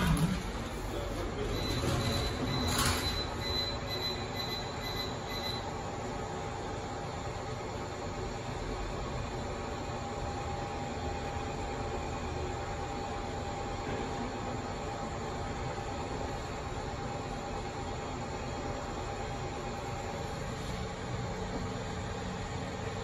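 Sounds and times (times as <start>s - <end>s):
lift doors shutting with a knock: 0.0s - 3.8s
rumble of lift ride: 0.0s - 4.0s
high pulsing beep: 1.5s - 5.6s.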